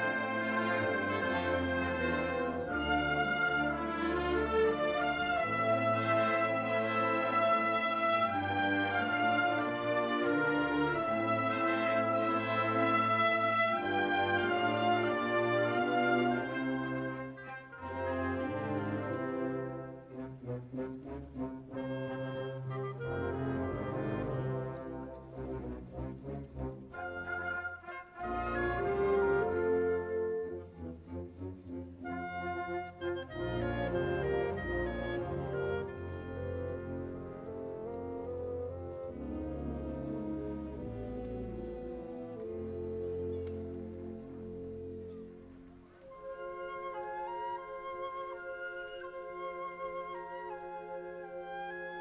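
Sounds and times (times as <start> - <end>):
french horns and low brass chords: 0.0 - 47.0
flute melody: 0.0 - 52.0
wind band playing: 0.0 - 52.0.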